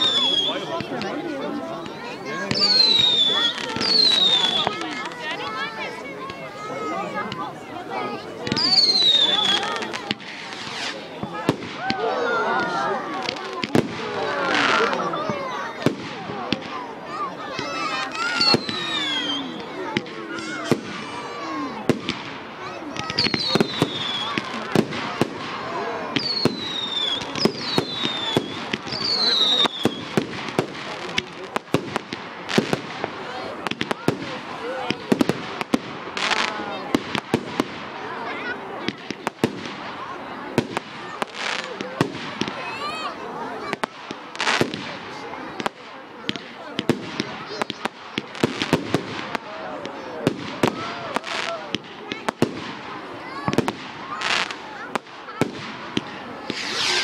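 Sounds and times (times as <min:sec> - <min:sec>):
falling whistles: 0:00.0 - 0:00.7, 0:02.6 - 0:04.7, 0:18.4 - 0:19.5, 0:23.2 - 0:24.3, 0:26.2 - 0:30.0, 0:56.5 - 0:57.0
fireworks bangs and crackles: 0:00.0 - 0:57.0
hissing whooshes: 0:56.5 - 0:57.0.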